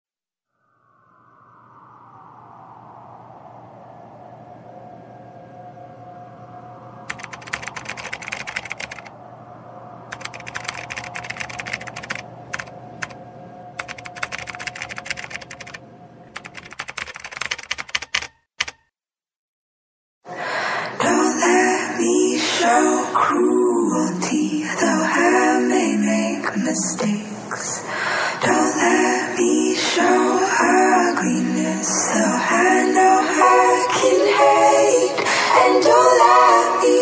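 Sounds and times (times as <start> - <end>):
steady ambient drone: 0.5 - 16.6, 20.3 - 37.0
keyboard typing: 7.1 - 9.1, 10.1 - 13.2, 13.8 - 18.8.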